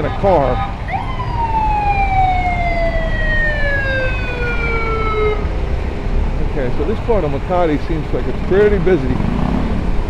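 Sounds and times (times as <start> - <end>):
siren wailing: 0.0 - 5.6.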